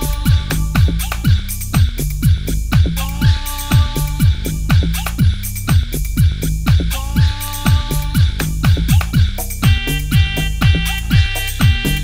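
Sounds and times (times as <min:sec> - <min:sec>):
kick drum beat: 0:00.0 - 0:12.0.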